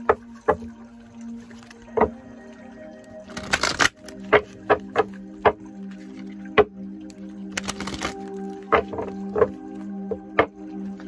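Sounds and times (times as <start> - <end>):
soft background music: 0.0 - 11.0
rapid card clicks: 7.6 - 8.2.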